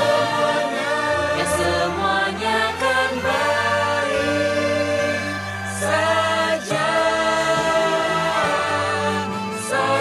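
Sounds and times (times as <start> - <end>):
choir singing: 0.0 - 10.0
musical backing: 0.0 - 10.0.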